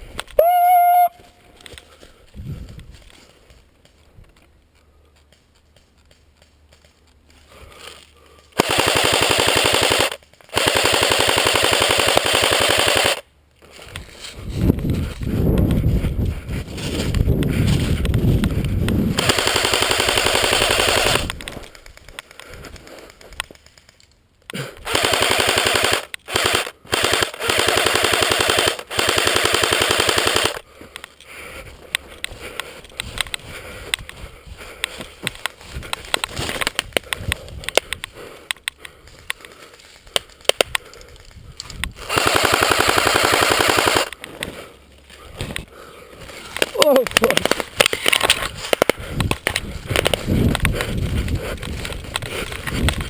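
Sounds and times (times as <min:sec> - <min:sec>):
scattered clicks: 0:08.5 - 0:15.8, 0:17.0 - 0:44.6, 0:45.4 - 0:45.7, 0:46.4 - 0:53.0
airsoft rifle automatic fire: 0:08.6 - 0:13.2, 0:19.1 - 0:21.3, 0:24.8 - 0:30.6, 0:42.0 - 0:44.1.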